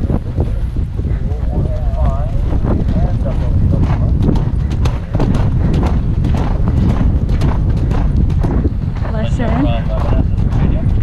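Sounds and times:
horse hoofbeats on turf: 0.0s - 11.0s
wind rumble on microphone: 0.0s - 11.0s.

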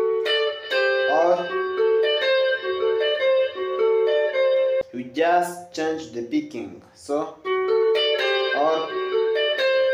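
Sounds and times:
clean electric guitar melody: 0.0s - 6.3s, 6.9s - 9.9s.

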